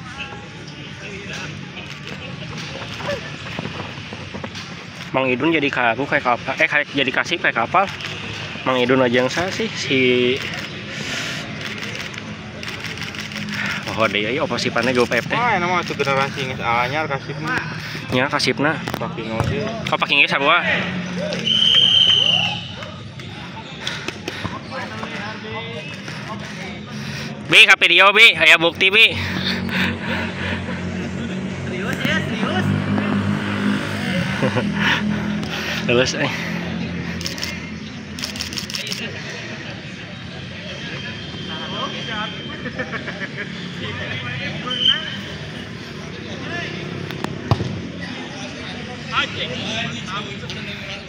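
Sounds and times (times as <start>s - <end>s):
faint voices of players: 0.0s - 51.0s
football kicked and bouncing: 19.4s - 19.7s, 47.5s - 47.8s.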